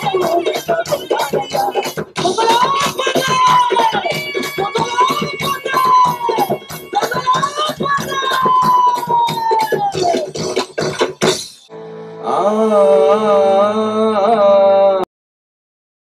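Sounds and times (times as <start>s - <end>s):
rapid drumming: 0.0s - 11.7s.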